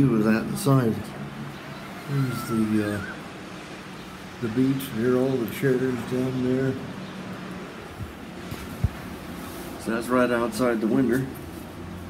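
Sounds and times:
wind on microphone: 0:07.8 - 0:09.4.

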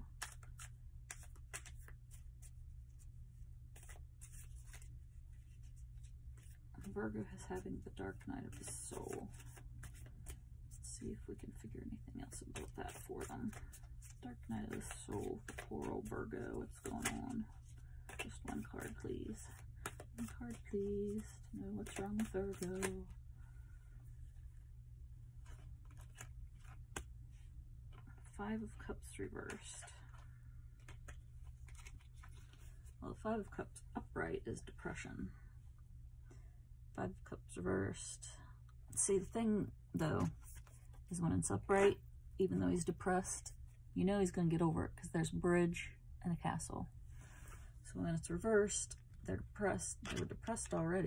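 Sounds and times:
low room hum: 0:00.0 - 0:51.0
cards rustling: 0:00.1 - 0:11.7, 0:12.3 - 0:23.2, 0:25.4 - 0:28.3, 0:29.5 - 0:33.0, 0:49.8 - 0:50.8.

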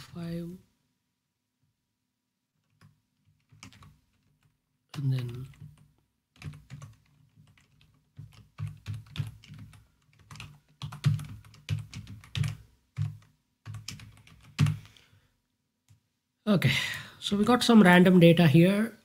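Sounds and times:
typing on computer keyboard: 0:02.6 - 0:15.0.

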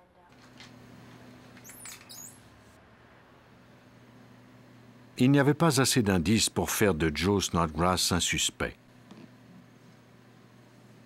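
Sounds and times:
low steady hum: 0:02.7 - 0:11.0.

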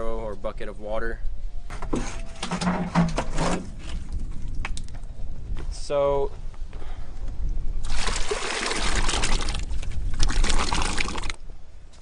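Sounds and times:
bucket scraping in steel barrel: 0:01.8 - 0:04.1.

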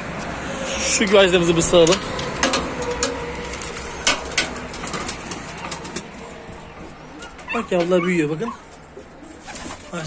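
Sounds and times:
birds cooing: 0:03.8 - 0:10.0.

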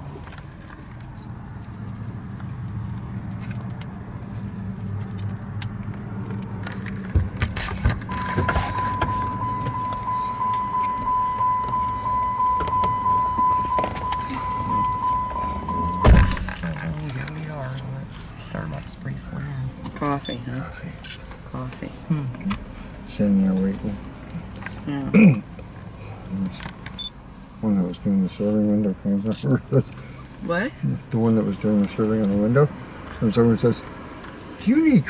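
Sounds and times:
low steady hum: 0:08.0 - 0:25.4
car door warning chime beeping: 0:08.1 - 0:16.5
car door slamming shut: 0:15.7 - 0:16.6.

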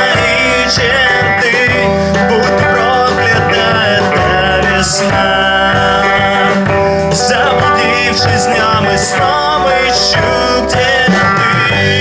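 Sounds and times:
live rock band playing: 0:00.0 - 0:12.0
man singing: 0:00.0 - 0:12.0.

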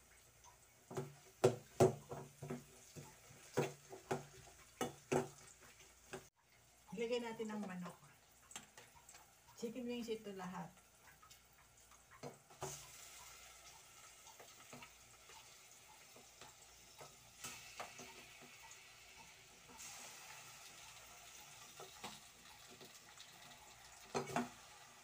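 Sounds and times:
chicken frying in hot oil: 0:00.0 - 0:25.0.

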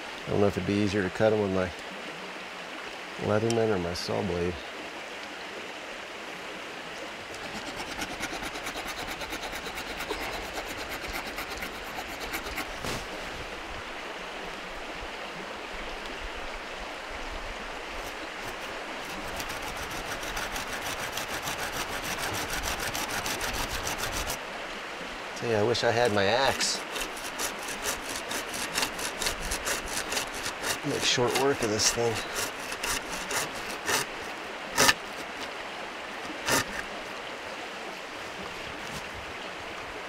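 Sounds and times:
hand saw cutting wood: 0:07.3 - 0:13.0, 0:18.0 - 0:24.4, 0:26.0 - 0:35.5, 0:36.3 - 0:36.9.

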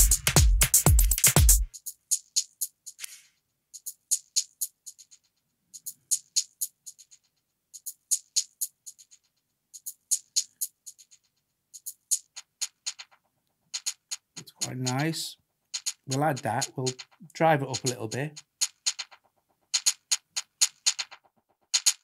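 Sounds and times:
drum machine percussion loop: 0:00.0 - 0:03.1, 0:03.8 - 0:22.0.

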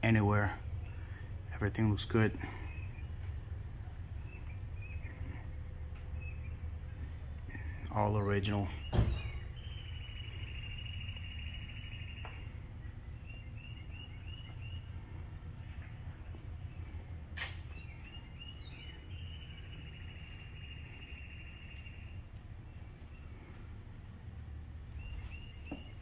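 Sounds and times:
steady low hum: 0:00.0 - 0:26.0
bird chirping and trilling: 0:08.5 - 0:15.0, 0:17.7 - 0:22.2.

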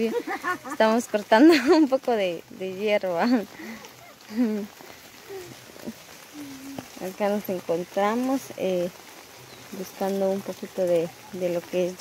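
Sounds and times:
light rain on foliage: 0:00.0 - 0:12.0
faint voice murmuring: 0:03.5 - 0:07.0.

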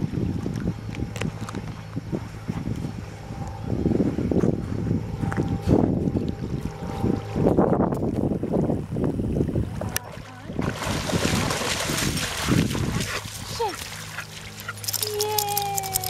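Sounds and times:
wind rumbling on microphone: 0:00.0 - 0:16.0
dogs splashing through water: 0:09.8 - 0:16.0.

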